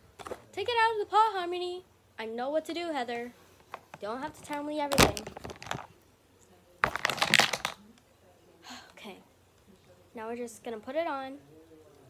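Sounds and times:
plush toys rustling: 0:03.4 - 0:06.0, 0:06.8 - 0:07.8
knocks from handling toys: 0:04.9 - 0:05.9.

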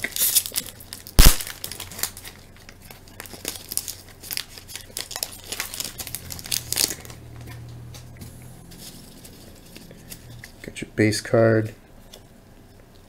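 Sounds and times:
foil wrapper crinkling: 0:00.0 - 0:08.0, 0:08.6 - 0:10.7
loud sharp crack: 0:01.2 - 0:01.7.

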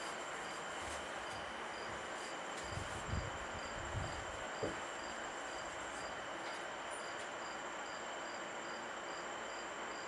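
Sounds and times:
steady hiss: 0:00.0 - 0:10.0.

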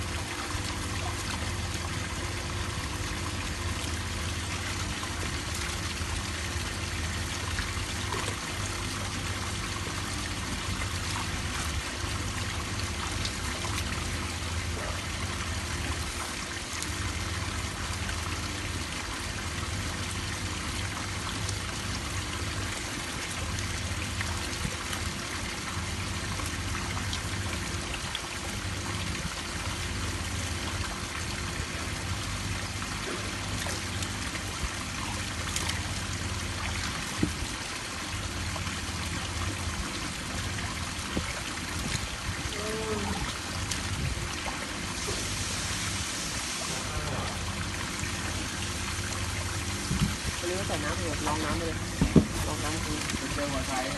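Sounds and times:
low steady hum: 0:00.0 - 0:53.9
water trickling and bubbling: 0:00.0 - 0:53.9.

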